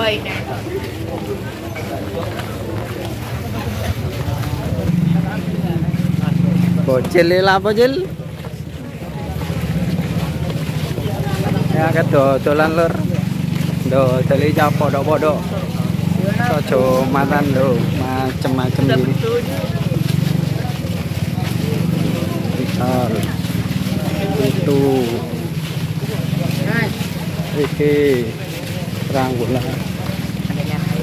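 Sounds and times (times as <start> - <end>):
small engine running: 0.7 - 31.0.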